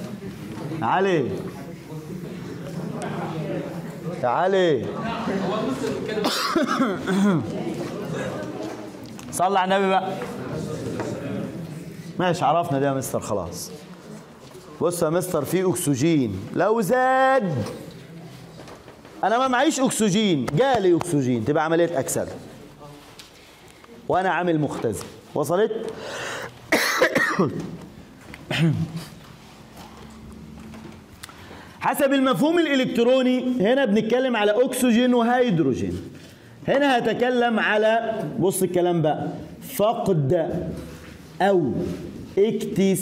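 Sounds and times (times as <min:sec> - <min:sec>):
person coughing: 0:06.2 - 0:07.5, 0:26.7 - 0:27.7, 0:28.5 - 0:29.1.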